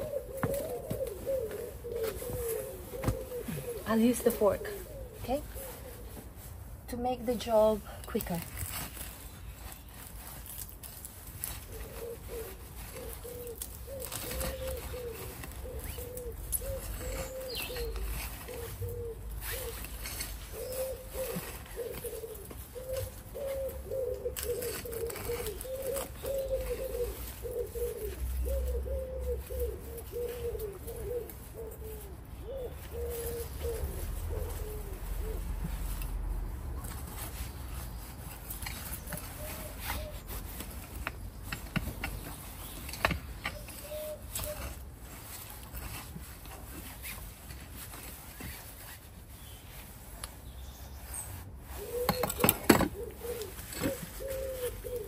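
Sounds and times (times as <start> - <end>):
pigeon cooing: 0.0 - 6.8, 11.1 - 50.1, 50.7 - 55.0
hand fork scraping compost: 0.0 - 55.0.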